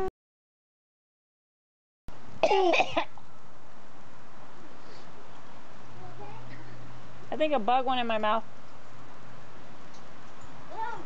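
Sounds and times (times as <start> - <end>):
steady background hiss: 2.1 - 11.0
person coughing and spluttering: 2.4 - 3.1.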